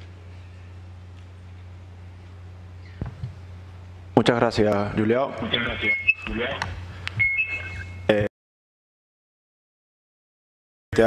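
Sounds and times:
low steady hum: 0:00.0 - 0:08.3
faint high whistle: 0:07.2 - 0:08.1.

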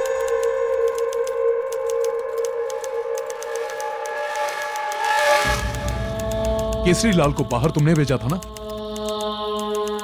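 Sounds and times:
eerie music drone: 0:00.0 - 0:10.0
typewriter keys clacking: 0:00.0 - 0:10.0.

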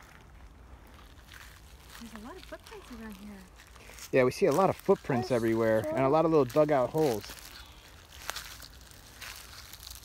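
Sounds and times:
soft rustles: 0:00.0 - 0:10.0.

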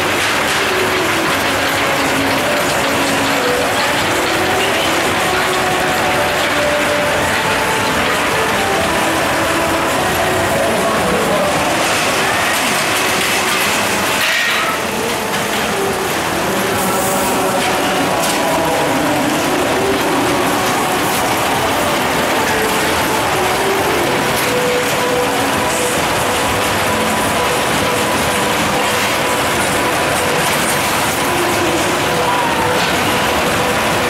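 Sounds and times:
roller coaster clattering on track: 0:00.0 - 0:34.0.

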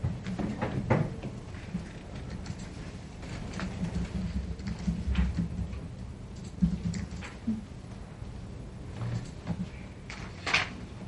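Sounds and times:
light clicks and taps at desks: 0:00.0 - 0:08.0, 0:09.0 - 0:10.8
steady low hum: 0:00.0 - 0:11.0.

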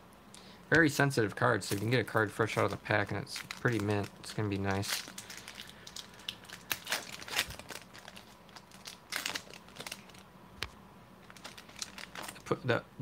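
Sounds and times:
foil wrapper tearing and crinkling: 0:01.6 - 0:10.2, 0:11.2 - 0:12.6.

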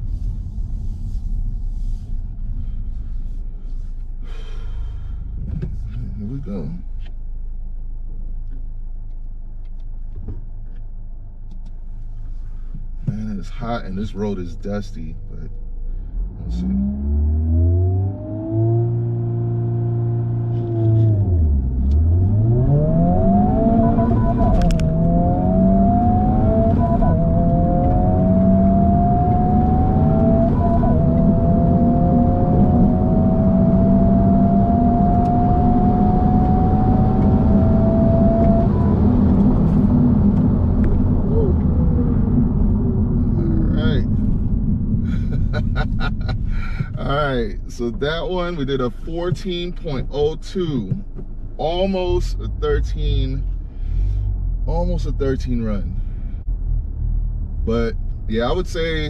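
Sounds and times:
car engine revving through gears: 0:16.0 - 0:47.1.

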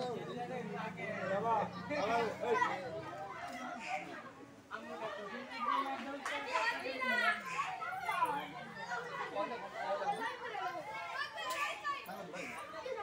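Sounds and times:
children shouting and calling out: 0:00.0 - 0:13.0.

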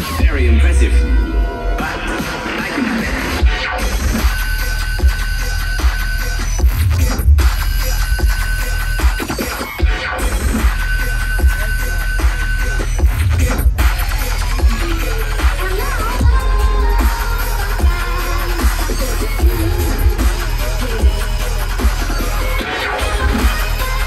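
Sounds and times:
bass-heavy electronic dance music: 0:00.0 - 0:24.0.

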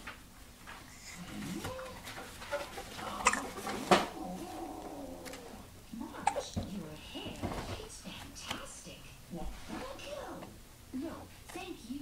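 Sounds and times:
infant hiccups: 0:03.2 - 0:03.5, 0:06.2 - 0:06.5.

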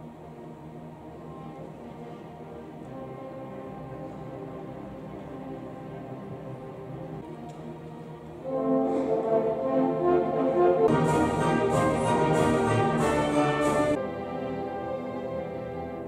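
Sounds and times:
orchestra playing: 0:00.0 - 0:16.0.

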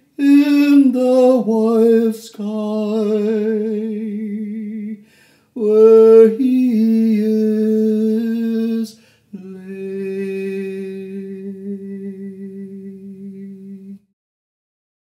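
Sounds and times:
person singing long notes: 0:00.2 - 0:05.0, 0:05.6 - 0:14.1
quick breath: 0:05.0 - 0:05.6, 0:09.0 - 0:09.3.

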